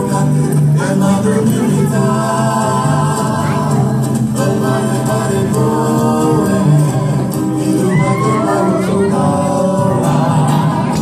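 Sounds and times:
voices singing long held notes: 0.0 - 11.0.

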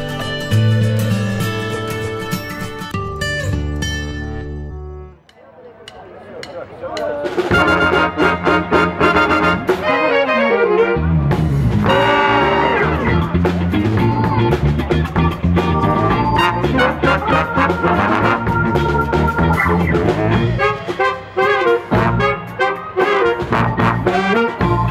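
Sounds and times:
big band playing jazz: 5.9 - 24.9.

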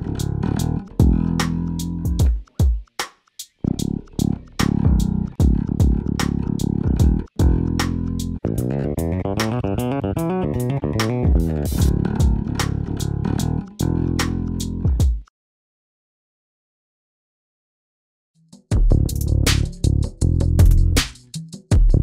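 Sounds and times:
electric bass playing: 0.0 - 2.3, 3.6 - 15.0.

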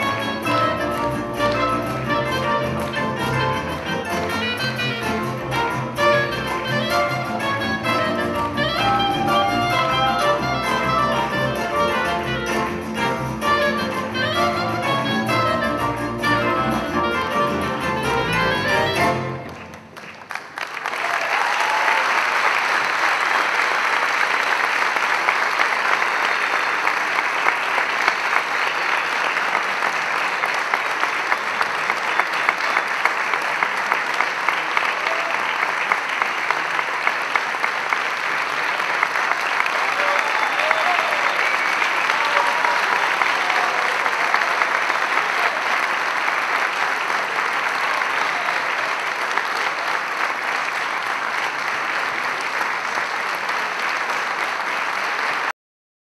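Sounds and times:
large audience applauding: 0.0 - 55.5.

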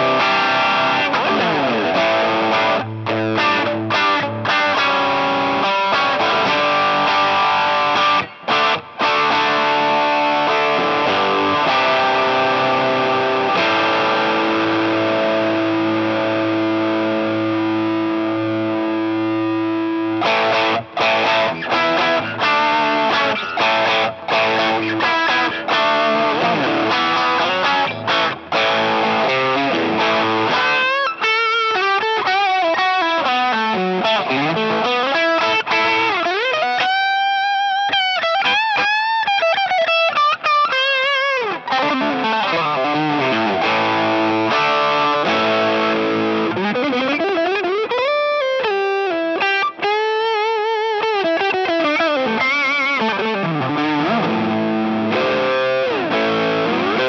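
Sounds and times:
overdriven electric guitar: 0.0 - 57.0.

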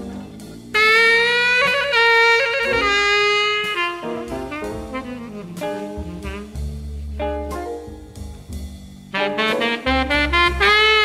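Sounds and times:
soft jazz chords: 0.0 - 11.0
horn long held notes: 0.7 - 6.8, 9.1 - 11.0.

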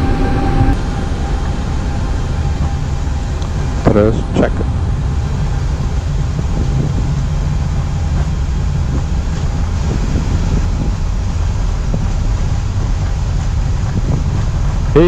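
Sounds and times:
jet engines at takeoff thrust: 0.0 - 15.0
wheels rolling over runway: 0.8 - 15.0.

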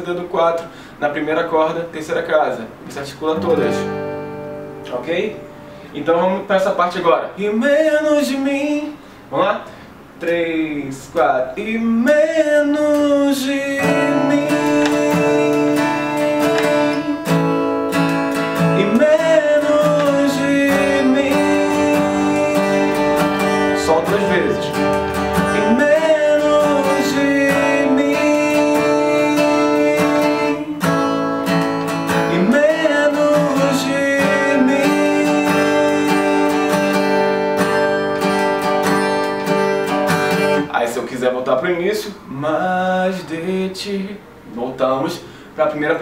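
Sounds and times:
acoustic guitar strumming: 0.0 - 46.0
man singing: 7.4 - 9.0, 11.0 - 17.4, 18.6 - 30.9, 32.1 - 37.2, 40.6 - 46.0.

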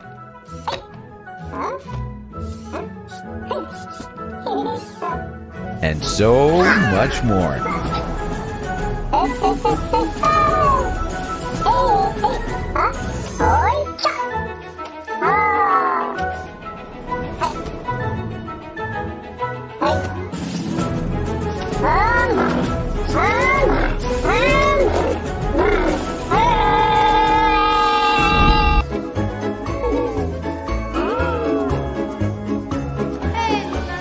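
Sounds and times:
background music: 0.0 - 34.0.

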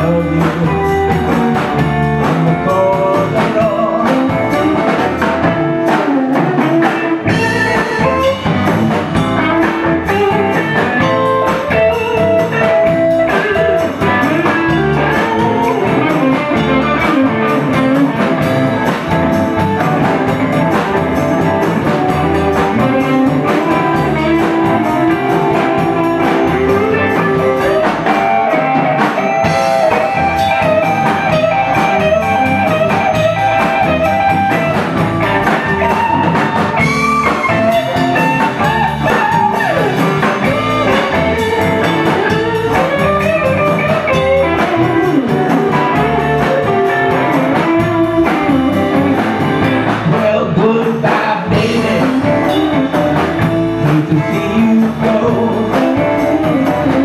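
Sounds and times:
drum kit: 0.0 - 57.0
electric bass: 0.0 - 57.0
electric guitar bending notes: 0.0 - 57.0.

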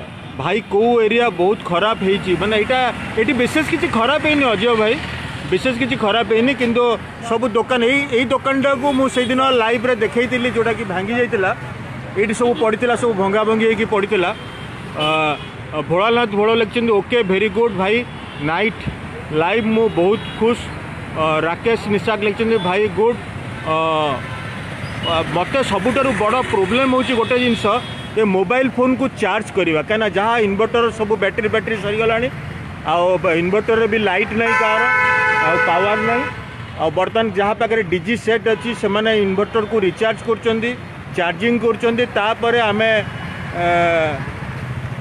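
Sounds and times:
road traffic: 0.0 - 45.0
man speaking: 0.4 - 14.4, 15.0 - 24.2, 25.0 - 44.3.

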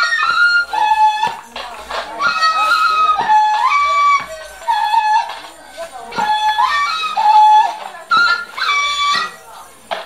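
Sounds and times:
wind instrument playing held notes: 0.0 - 10.0.

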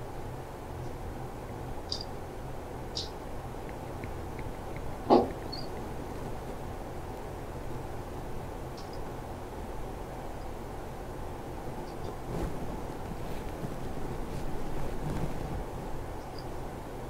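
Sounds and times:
microphone hum and hiss: 0.0 - 17.0.

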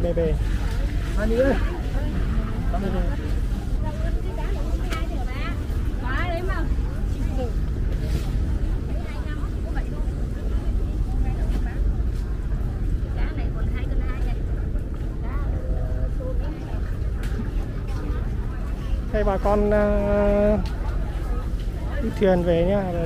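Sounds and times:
chatter of vendors and buyers: 0.0 - 23.0
steady low rumble: 0.0 - 23.0.

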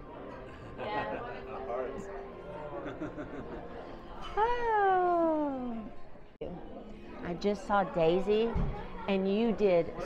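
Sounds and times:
murmur of dining room voices: 0.0 - 10.0.

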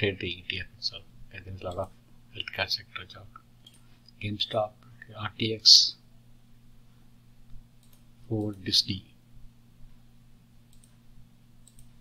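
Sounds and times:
low steady hum: 0.0 - 12.0
computer mouse clicks: 3.4 - 3.9, 7.8 - 8.6, 10.7 - 11.0, 11.6 - 12.0.

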